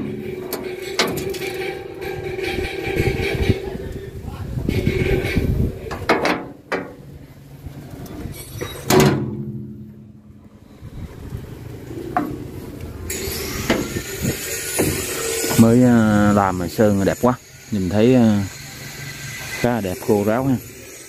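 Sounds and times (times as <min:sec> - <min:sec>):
metal knocks and clatter: 0:00.0 - 0:03.8, 0:04.8 - 0:07.0, 0:08.2 - 0:10.2
metal lid clanging shut: 0:08.6 - 0:09.8.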